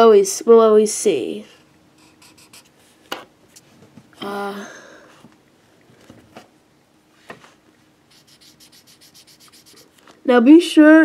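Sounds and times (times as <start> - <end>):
marker scratching on paper: 2.0 - 2.7, 8.1 - 10.0.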